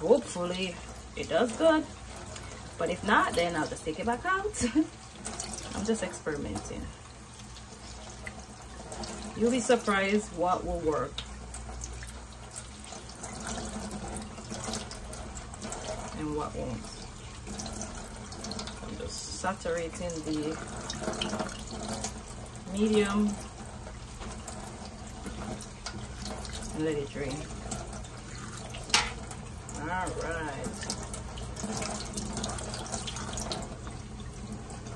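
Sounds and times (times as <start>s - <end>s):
faucet running: 0.0s - 34.9s
water draining into metal sink: 0.0s - 34.9s.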